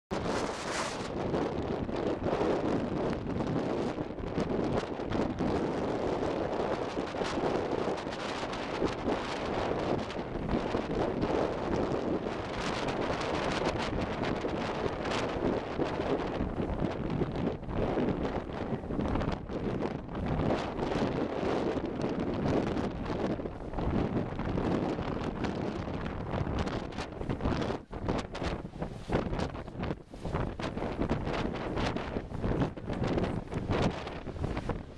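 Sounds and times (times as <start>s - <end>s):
gusty wind on microphone: 0.1s - 34.9s.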